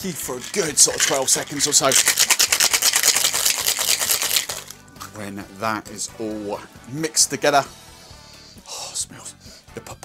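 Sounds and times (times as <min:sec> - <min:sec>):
ice rattling in cocktail shaker: 0:00.0 - 0:04.8.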